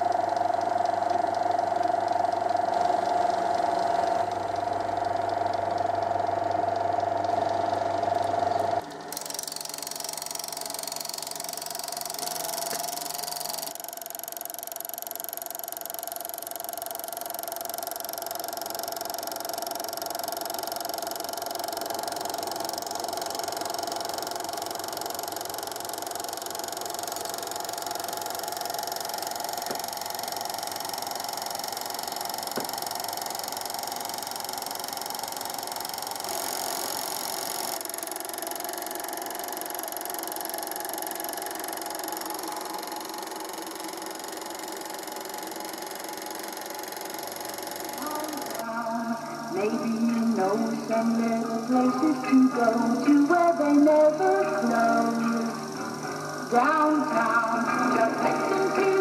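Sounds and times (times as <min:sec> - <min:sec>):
film projector whirring: 0:00.0 - 0:59.0
projector whine: 0:00.0 - 0:59.0.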